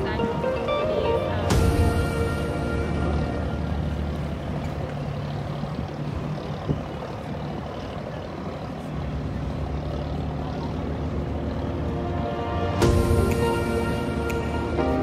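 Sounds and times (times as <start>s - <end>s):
boat engine rumbling: 0.0s - 15.0s
water noise: 0.0s - 15.0s
wind noise: 5.1s - 8.6s.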